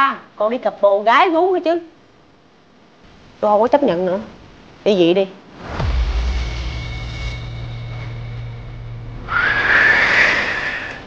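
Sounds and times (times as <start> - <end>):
low hum: 5.4 - 11.0
deep boom sweeping down: 5.5 - 11.0
rising whoosh: 5.5 - 11.0.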